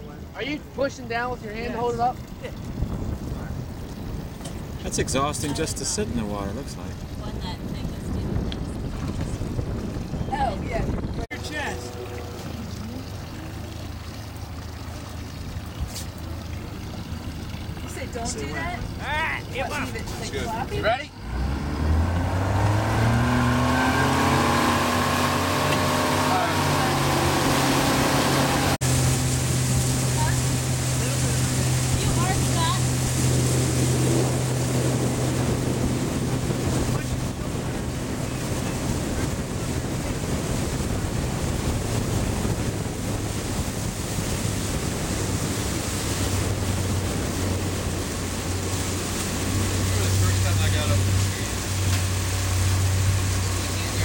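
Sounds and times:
motorboat engine: 0.0s - 54.0s
water noise: 0.0s - 54.0s
wind noise: 1.8s - 11.3s, 21.8s - 50.1s.

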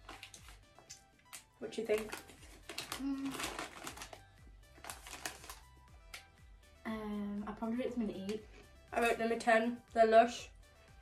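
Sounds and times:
crisps being chewed: 0.0s - 6.2s
packet crinkling: 0.0s - 6.2s
quiet background music: 0.0s - 11.0s.

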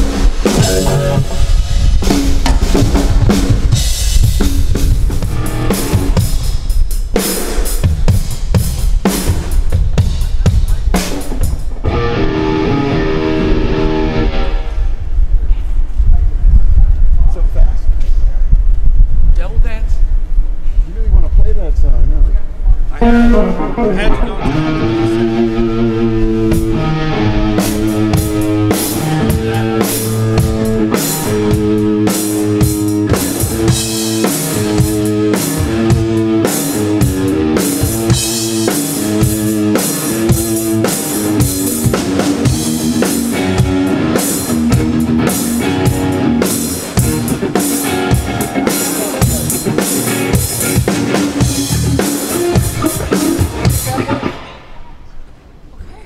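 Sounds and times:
drum kit: 0.0s - 14.5s, 23.0s - 54.8s
electric guitars: 0.0s - 15.9s, 22.8s - 55.2s
electric bass: 0.0s - 17.0s, 22.7s - 54.4s.

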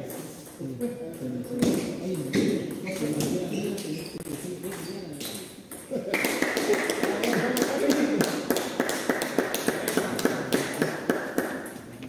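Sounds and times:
background hum of hall: 0.0s - 12.0s.

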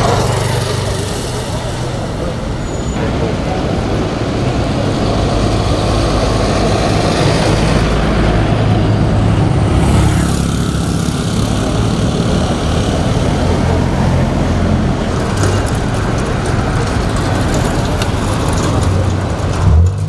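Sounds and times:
cars and bus driving past: 0.0s - 20.0s.

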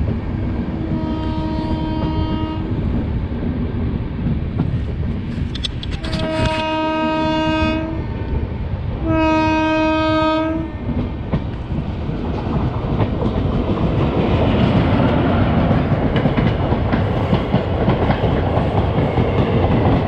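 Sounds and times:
train running on rails: 0.0s - 20.0s
train horn blasts: 0.7s - 2.7s, 6.0s - 8.1s, 9.0s - 10.9s.

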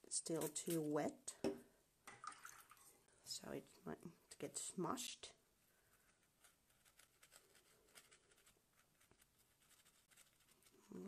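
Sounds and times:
paintbrush dabbing on paper: 0.1s - 1.2s, 5.9s - 11.0s.

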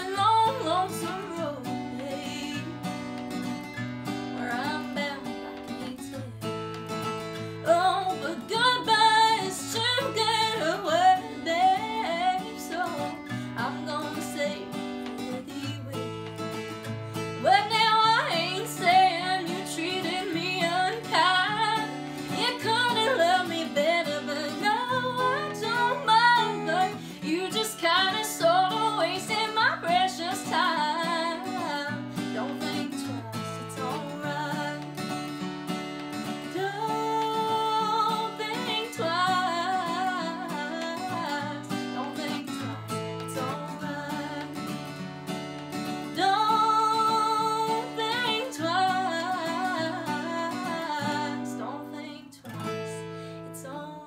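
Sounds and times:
acoustic guitar: 0.0s - 54.0s
woman singing folk song: 0.0s - 54.0s.

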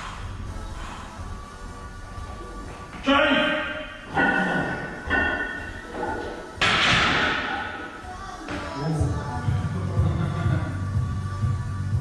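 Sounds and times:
music: 0.0s - 12.0s
barbell clanking into rack: 4.0s - 7.9s.

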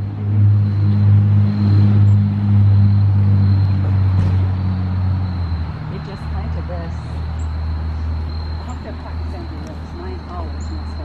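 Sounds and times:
vehicle engine running: 0.0s - 11.0s.

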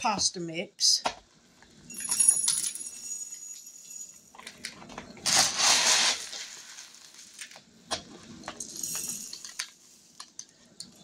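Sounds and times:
rattle of dry grains: 5.2s - 7.6s
dry grains poured into glass jar: 5.3s - 7.4s.

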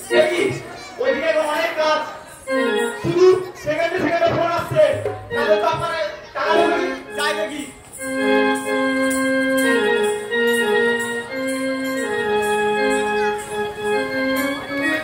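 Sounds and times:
keyboard melody of held notes: 0.0s - 15.0s.

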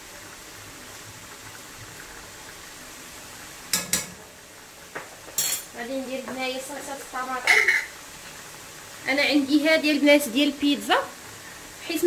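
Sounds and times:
food cooking hiss: 0.0s - 12.0s
rice boiling: 0.0s - 12.0s.

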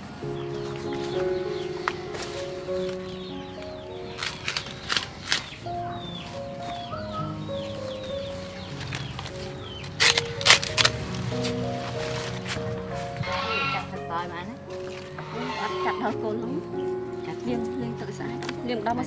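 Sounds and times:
gentle background music: 0.0s - 19.0s
cleaver chopping leaves: 4.1s - 5.6s, 8.8s - 12.8s.

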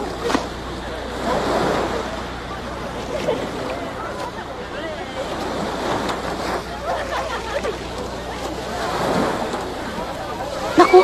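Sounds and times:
sea waves washing: 0.0s - 11.0s.

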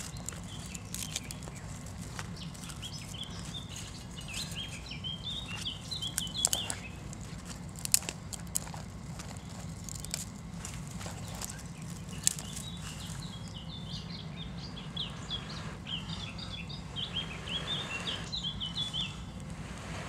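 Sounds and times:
kindling fire crackling: 0.0s - 13.8s
small bird chirping: 0.0s - 19.4s
low steady hum: 0.0s - 20.0s.

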